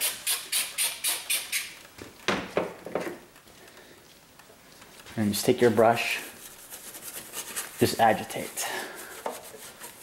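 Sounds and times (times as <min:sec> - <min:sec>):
spray bottle spritzing: 0:00.0 - 0:01.8.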